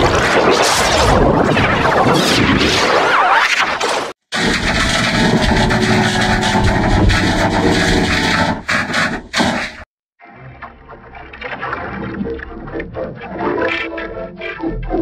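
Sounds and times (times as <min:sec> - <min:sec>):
distorted logo music: 0:04.4 - 0:09.8.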